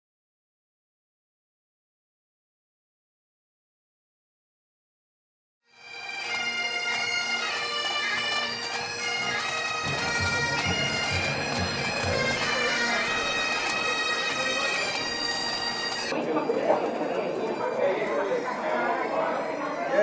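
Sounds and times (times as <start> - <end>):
bagpipes playing a tune: 5.7 - 20.0
low regular drumbeat: 9.8 - 12.6.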